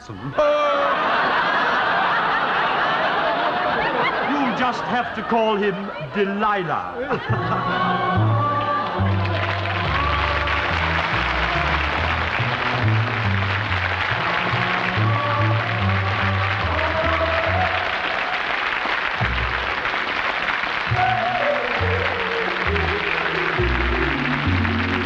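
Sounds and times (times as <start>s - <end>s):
audience applause: 0.0s - 25.0s
theme music with stepping bass: 7.2s - 17.9s, 19.2s - 20.0s.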